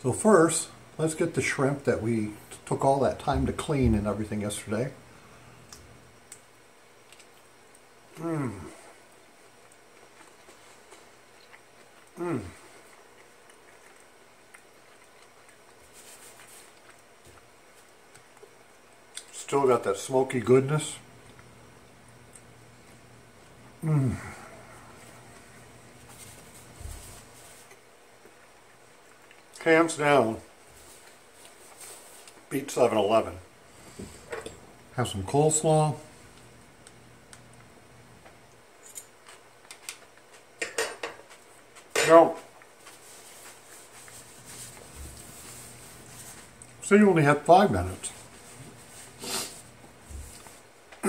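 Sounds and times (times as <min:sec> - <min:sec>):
person chewing: 0:05.6 - 0:19.3, 0:27.4 - 0:29.6.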